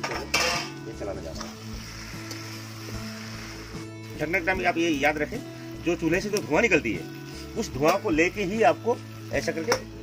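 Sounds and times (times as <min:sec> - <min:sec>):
metal lid clattering: 0:00.0 - 0:00.8
background music: 0:00.0 - 0:10.0.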